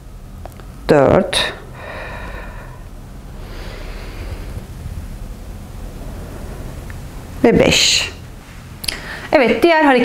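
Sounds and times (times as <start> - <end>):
steady low hum: 0.0 - 10.0
soft breath out: 1.8 - 4.7.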